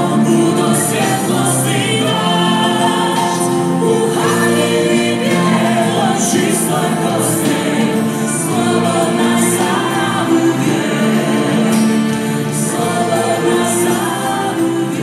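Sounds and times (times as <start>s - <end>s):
choir singing religious song: 0.0s - 15.0s.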